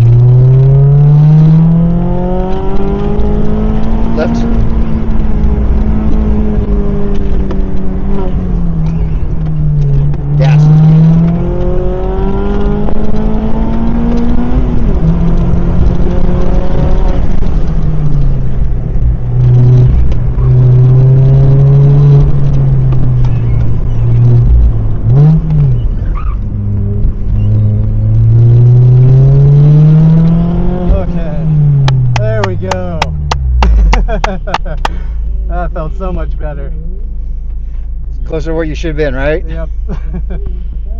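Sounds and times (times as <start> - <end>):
car engine revving: 0.0 - 40.9.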